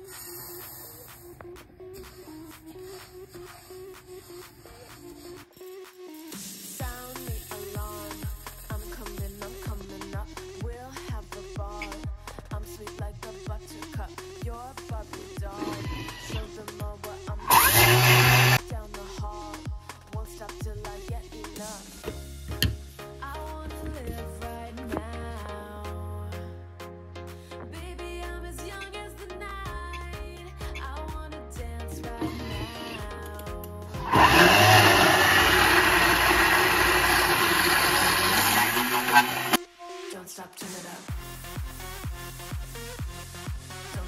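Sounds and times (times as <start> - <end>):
background music with steady beat: 0.0 - 44.0
blender blade grinding seeds: 15.6 - 16.5, 17.5 - 18.6, 32.2 - 33.1, 34.0 - 39.6.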